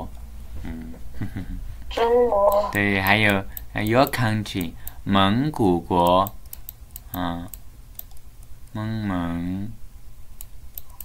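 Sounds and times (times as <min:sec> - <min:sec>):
light clicks at computer: 0:06.0 - 0:08.5, 0:10.4 - 0:11.0.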